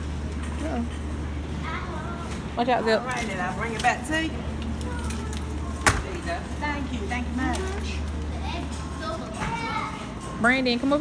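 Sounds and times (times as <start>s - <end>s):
children and adults chattering: 0.6s - 11.0s.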